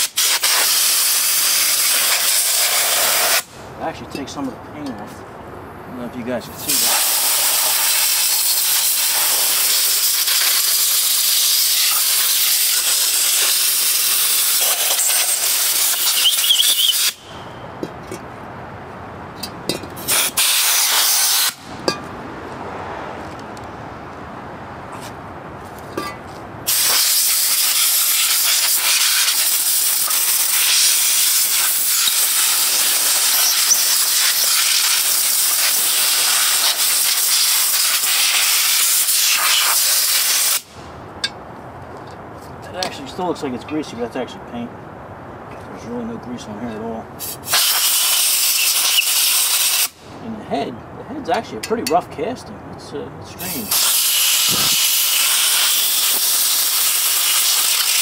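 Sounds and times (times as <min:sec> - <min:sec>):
compressed air blow gun hissing: 0:00.0 - 0:03.6, 0:06.6 - 0:17.2, 0:20.0 - 0:21.7, 0:26.7 - 0:40.8, 0:47.2 - 0:50.0, 0:53.5 - 0:58.0.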